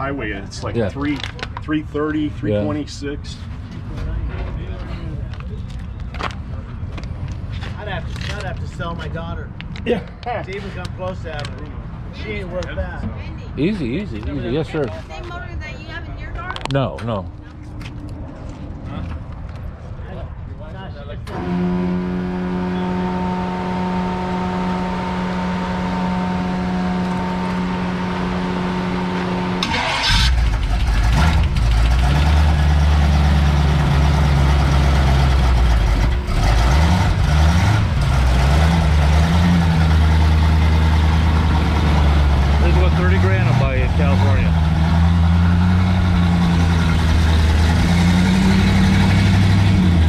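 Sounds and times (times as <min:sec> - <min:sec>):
car engine firing and revving: 0:21.3 - 0:50.0
engine starter hum: 0:29.6 - 0:32.0.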